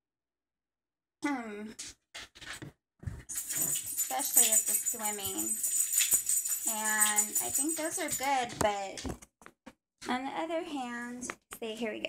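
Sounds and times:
jingling rattle: 3.3s - 8.5s.

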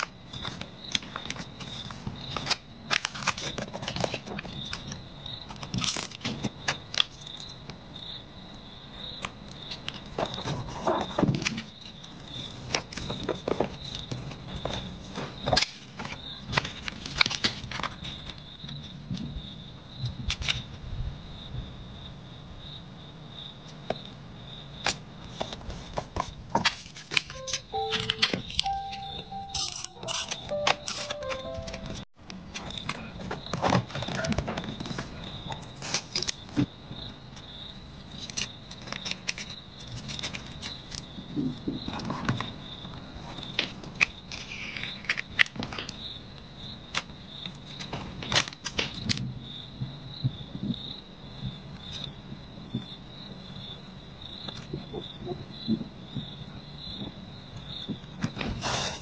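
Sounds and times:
paper stickers crackling and rustling: 12.7s - 18.4s, 38.1s - 41.0s.

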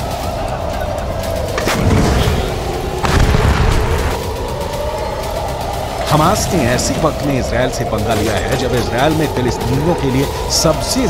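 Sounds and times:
low rumble: 0.6s - 10.4s
artillery gun booming: 1.7s - 4.2s.

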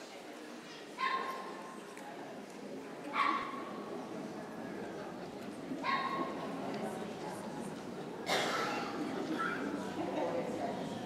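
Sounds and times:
crowd murmur in a large hall: 0.0s - 11.0s.

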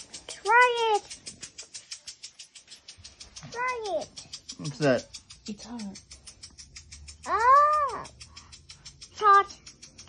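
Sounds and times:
faint fast ticking: 0.0s - 10.0s.

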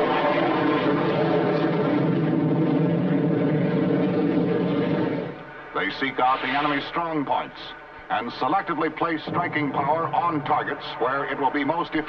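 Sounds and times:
jet engine noise: 0.0s - 12.0s.

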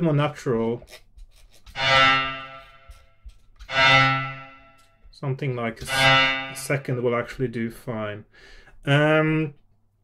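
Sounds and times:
synthesized bowed-string tone: 1.7s - 4.9s, 5.8s - 7.0s.

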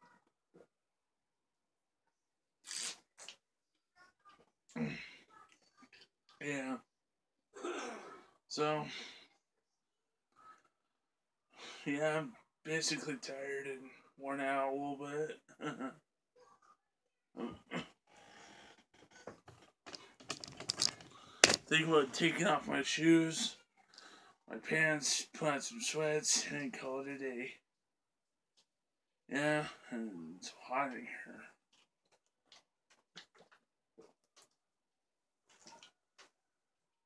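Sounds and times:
plastic bottle crackling: 19.9s - 21.7s.

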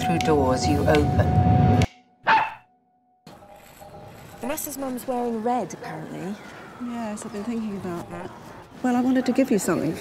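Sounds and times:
faint outdoor background: 0.0s - 10.0s
dog barking: 2.2s - 2.6s.

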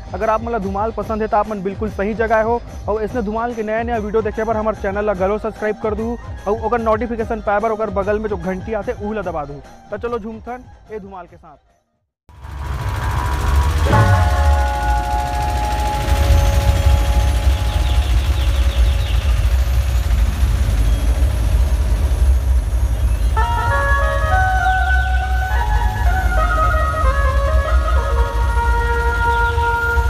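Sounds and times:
heavy bass drumming: 12.4s - 30.0s.

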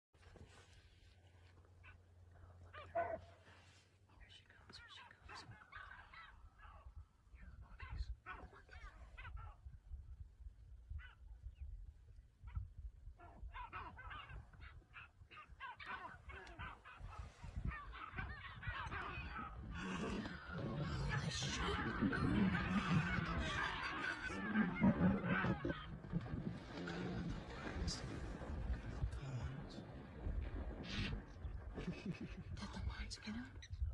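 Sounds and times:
low voices: 13.2s - 33.8s.

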